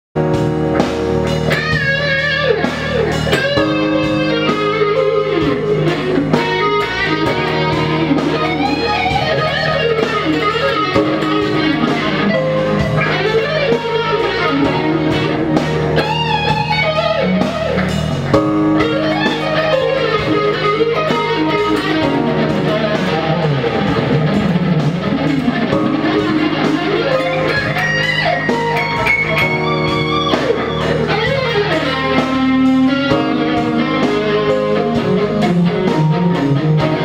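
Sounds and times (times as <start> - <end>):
electric guitar lead: 0.2 - 37.0.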